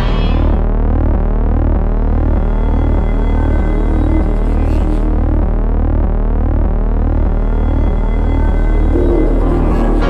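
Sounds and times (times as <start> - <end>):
pulsing electronic drone: 0.0 - 10.0.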